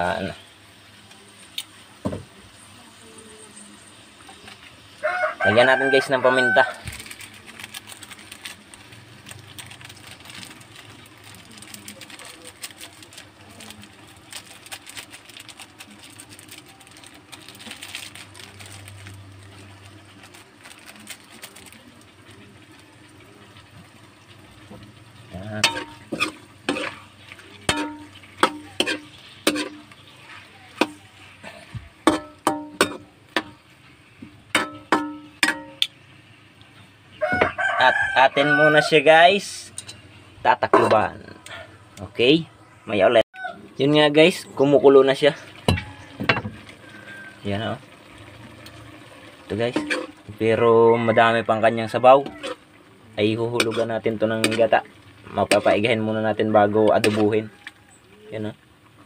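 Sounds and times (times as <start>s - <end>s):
seafood sizzling in a wok: 0.0s - 38.2s, 44.0s - 59.0s.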